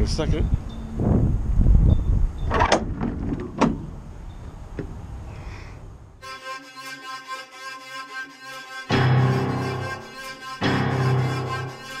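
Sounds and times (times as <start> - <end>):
wind rumbling on microphone: 0.0 - 6.1
background music: 6.2 - 12.0.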